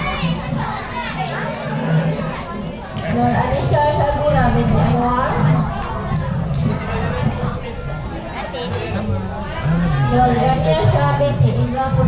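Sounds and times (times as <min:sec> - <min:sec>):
chatter of children and adults: 0:00.0 - 0:12.0.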